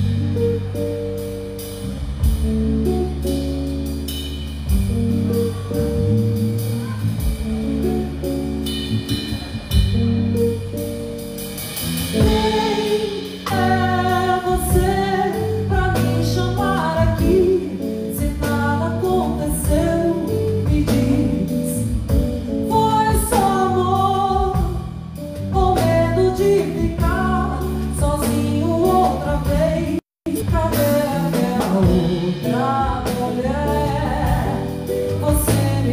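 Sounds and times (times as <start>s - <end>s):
live band playing slow song: 0.0s - 35.9s
woman singing: 12.2s - 35.9s.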